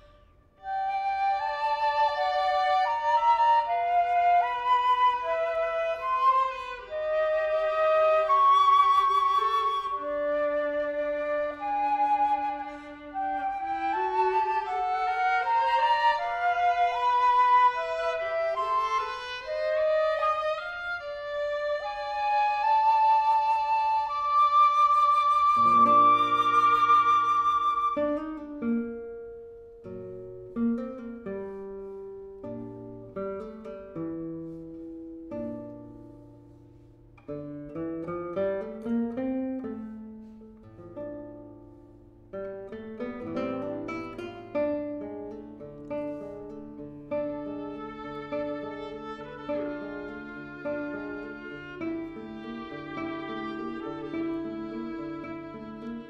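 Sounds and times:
flute melody with vibrato: 0.0 - 28.9
viola lines: 0.0 - 56.0
plucked guitar notes: 25.5 - 56.0.

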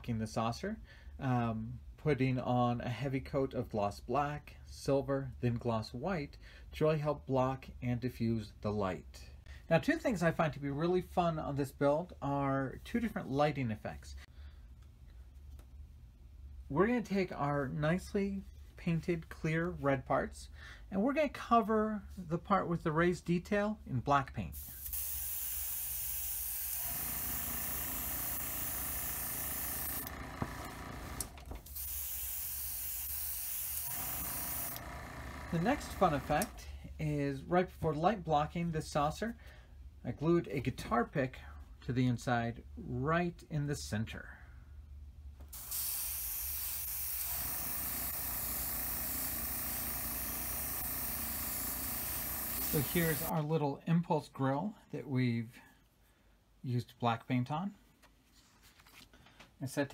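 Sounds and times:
spray paint hissing: 24.6 - 30.1, 31.7 - 34.8, 45.6 - 53.3.

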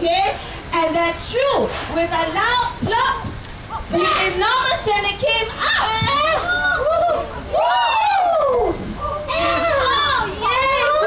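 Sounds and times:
children calling out: 5.5 - 11.0.

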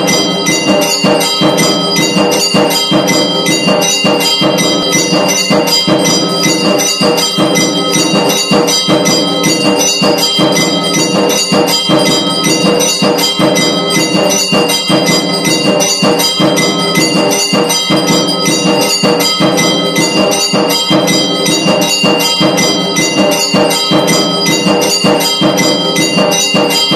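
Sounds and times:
temple bells ringing rapidly: 0.0 - 26.9.

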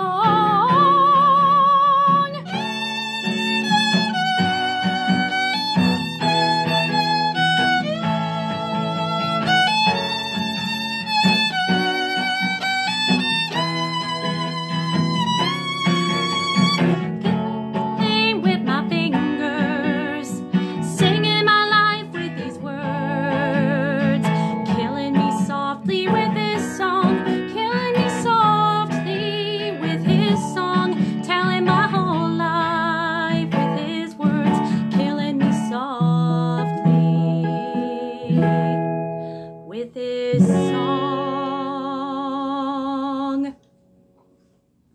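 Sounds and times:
violin plucked notes: 0.0 - 42.0
violin bowed melody: 0.2 - 38.9.

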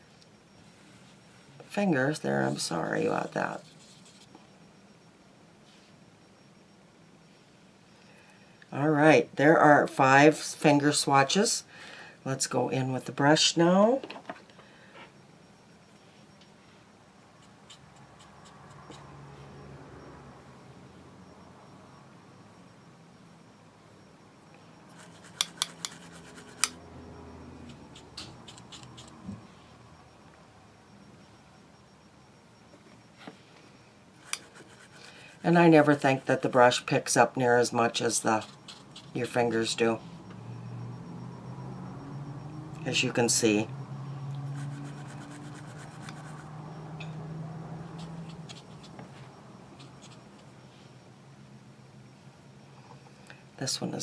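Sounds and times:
low steady hum: 0.0 - 54.0
brush scratching powder: 3.5 - 4.3, 17.4 - 19.1, 24.9 - 26.8, 27.6 - 29.2, 34.2 - 37.0, 37.8 - 39.5, 44.4 - 46.6, 47.8 - 49.0, 49.7 - 50.5
brush on skin: 24.9 - 26.8, 34.2 - 36.4, 44.4 - 46.5.

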